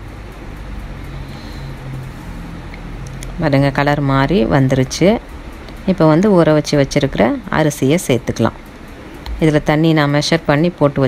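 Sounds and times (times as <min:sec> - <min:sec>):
low cooking hum: 0:00.0 - 0:11.0.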